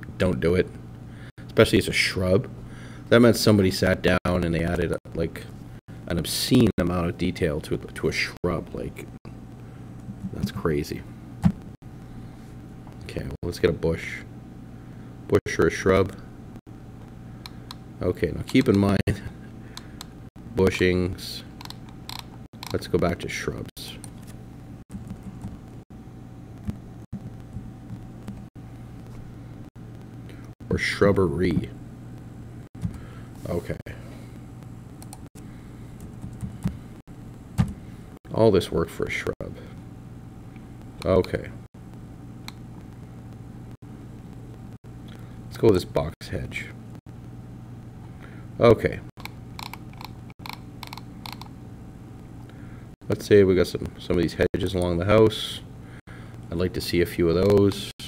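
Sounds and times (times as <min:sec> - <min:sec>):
low electrical hum: 0:00.0 - 0:58.0
mouse and keyboard clicks: 0:21.6 - 0:22.8, 0:49.2 - 0:51.5.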